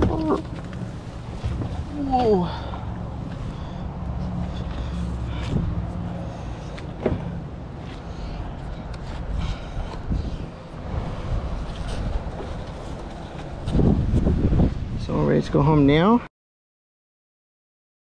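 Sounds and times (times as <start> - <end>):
wind rumbling on microphone: 0.0 - 7.4, 8.4 - 16.1.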